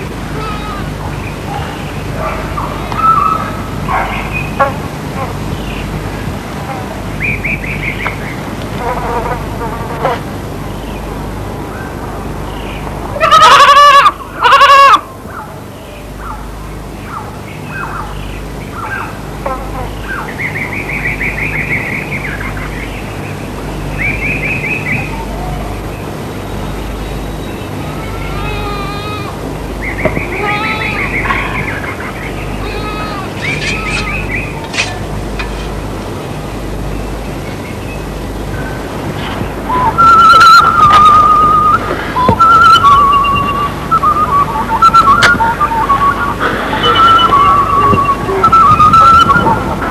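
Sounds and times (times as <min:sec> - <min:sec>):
birds chirping trills: 0:00.0 - 0:49.9
low steady hum: 0:00.0 - 0:49.9
goat bleating loudly: 0:00.3 - 0:01.0, 0:27.8 - 0:29.4, 0:30.3 - 0:31.2, 0:32.6 - 0:34.2.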